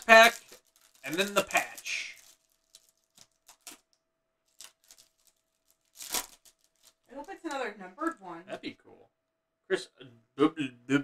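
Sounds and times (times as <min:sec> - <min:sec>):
wrapper ripping: 0:00.0 - 0:07.6
wrapper crinkling: 0:00.0 - 0:07.7.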